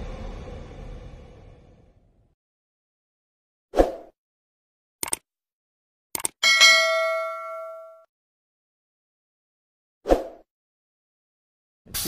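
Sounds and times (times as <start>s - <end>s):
quick clicks: 5.0s - 5.2s, 6.2s - 6.4s
bright bell ding: 6.4s - 8.1s.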